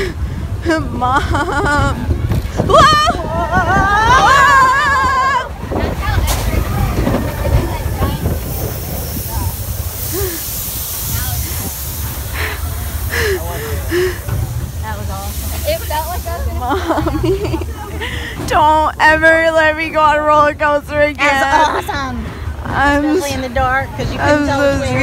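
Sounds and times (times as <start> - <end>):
riders' voices: 0.0 - 25.0
roller coaster rumbling on track: 0.0 - 25.0
rush of wind: 0.0 - 25.0.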